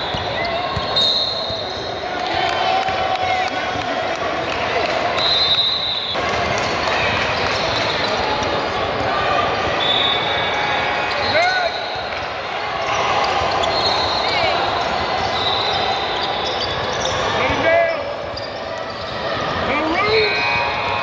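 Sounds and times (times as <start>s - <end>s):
sneakers squeaking: 0.0s - 2.1s, 5.2s - 12.2s, 12.8s - 21.0s
voices echoing in gym: 0.0s - 21.0s.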